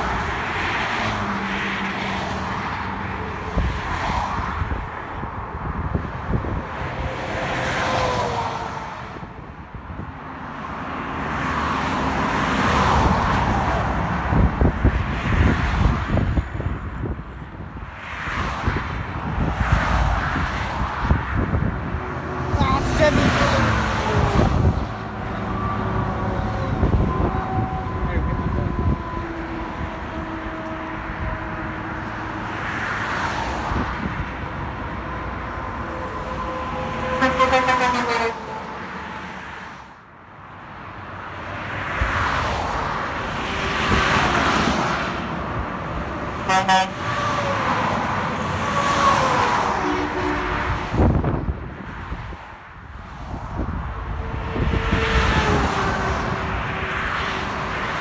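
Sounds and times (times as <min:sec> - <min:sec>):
cars and trucks passing: 0:00.0 - 0:58.0
steady multi-note horn: 0:37.0 - 0:38.5, 0:46.5 - 0:47.0.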